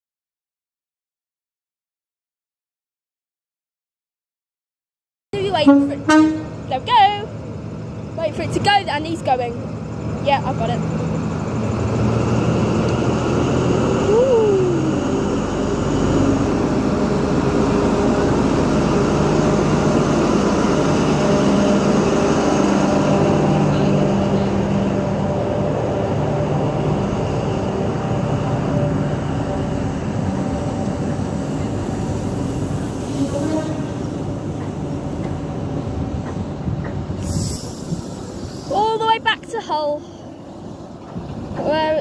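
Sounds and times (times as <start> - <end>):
diesel train engine droning: 5.4 - 42.0
train coaches rolling past: 5.4 - 42.0.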